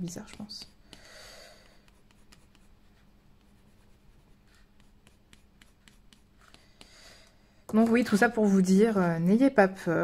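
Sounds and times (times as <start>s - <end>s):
colored pencil scratching on paper: 0.0s - 7.1s.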